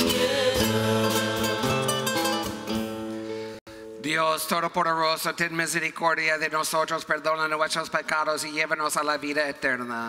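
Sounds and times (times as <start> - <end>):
person singing: 0.0 - 2.8
strummed acoustic guitars: 0.0 - 3.6.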